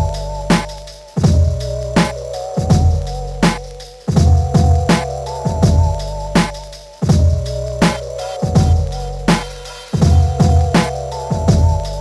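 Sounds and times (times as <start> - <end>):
deep bass: 0.0 - 12.0
kick drum: 4.1 - 4.9, 5.5 - 6.0, 7.0 - 7.4, 8.5 - 8.9, 10.0 - 11.8
wavering melodic sample: 4.2 - 12.0
snare hits: 6.4 - 6.7.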